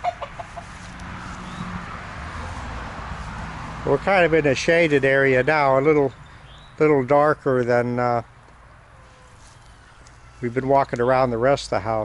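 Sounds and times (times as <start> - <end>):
chicken clucking: 0.0 - 0.8
outdoor background noise: 0.0 - 12.0.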